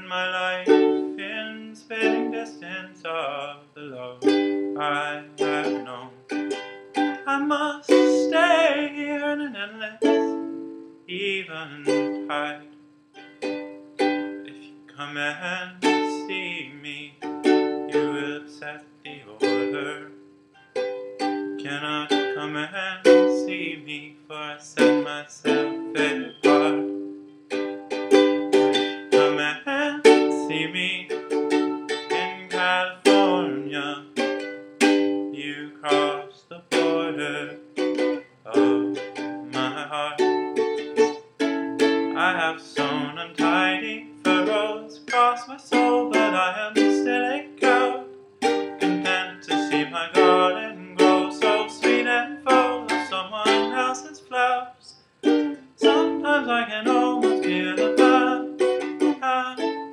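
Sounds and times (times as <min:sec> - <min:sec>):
ukulele plucking: 0:00.0 - 0:59.9.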